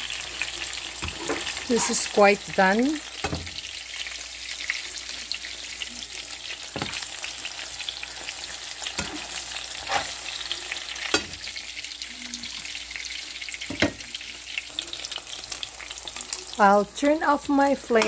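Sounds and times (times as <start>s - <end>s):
eggs sizzling in a pan: 0.0s - 18.0s.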